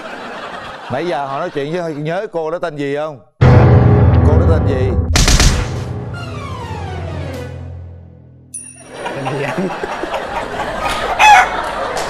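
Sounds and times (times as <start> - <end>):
studio audience laughter: 0.0 - 2.2, 8.9 - 12.0
comic chicken call: 10.1 - 11.6.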